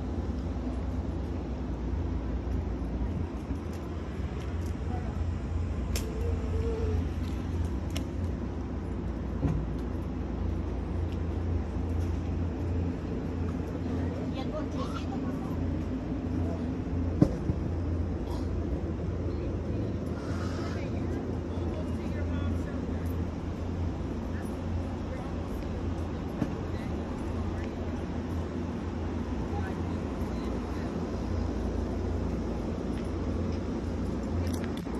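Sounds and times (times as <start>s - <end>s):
distant voices: 0.0s - 34.9s
low hum and rumble: 0.0s - 34.9s.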